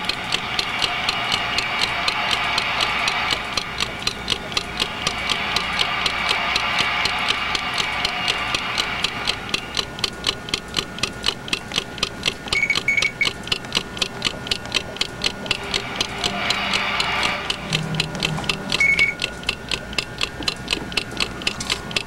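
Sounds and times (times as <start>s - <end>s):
rapid even ticking: 0.0s - 22.0s
short high beeps: 18.8s - 19.2s.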